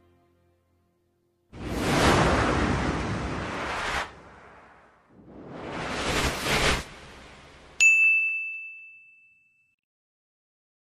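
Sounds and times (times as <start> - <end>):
bright bell-like ding: 7.8 - 9.8.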